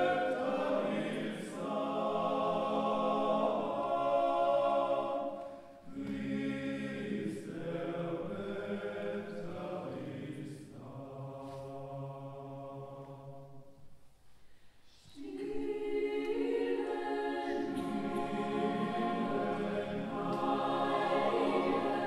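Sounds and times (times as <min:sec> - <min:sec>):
choir singing sustained chords: 0:00.0 - 0:14.0, 0:14.9 - 0:22.0.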